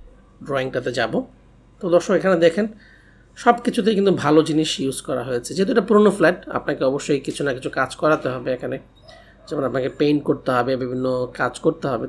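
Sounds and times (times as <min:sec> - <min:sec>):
man speaking: 0:00.0 - 0:02.8, 0:03.4 - 0:08.8, 0:09.4 - 0:12.0.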